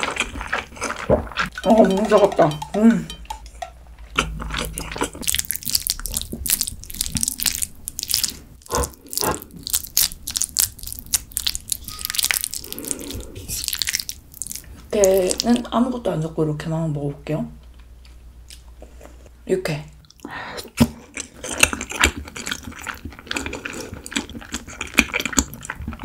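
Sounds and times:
close chewing and mouth noises: 0.0s - 2.0s, 4.0s - 15.7s, 20.0s - 26.0s.

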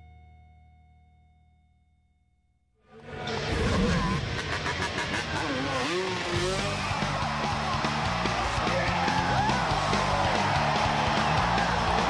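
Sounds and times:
music: 2.9s - 12.0s
motorbike engine revving: 3.0s - 12.0s.

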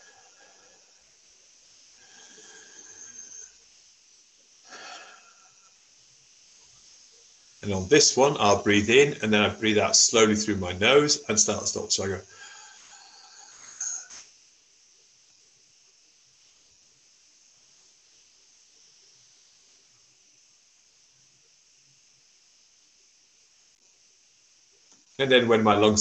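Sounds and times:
man breathing through nose: 2.0s - 3.6s, 4.6s - 5.8s, 12.3s - 14.2s.

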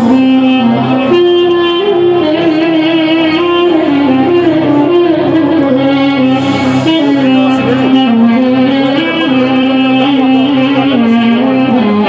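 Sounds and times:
live band music through speakers: 0.0s - 12.0s.

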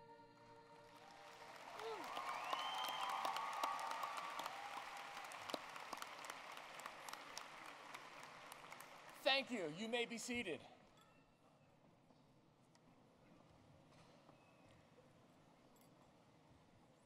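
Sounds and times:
audience applauding: 0.8s - 10.3s.

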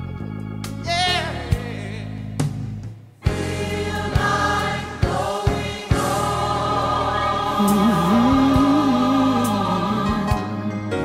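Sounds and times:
gospel choir singing: 3.2s - 11.0s
low voice singing wavering line: 7.6s - 10.5s.

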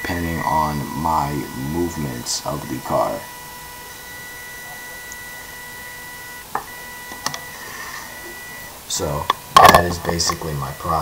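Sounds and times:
small motors whining: 0.0s - 11.0s
motor clicks: 3.8s - 7.5s.

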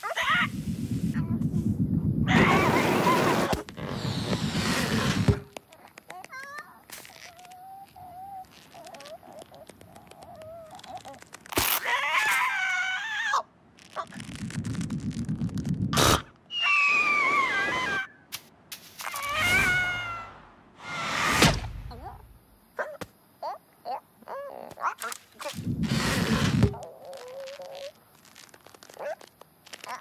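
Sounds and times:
low fluttering rumble: 0.5s - 2.4s, 14.0s - 16.3s
descending cartoon cry: 19.2s - 21.0s
cartoon thump: 21.2s - 22.3s.

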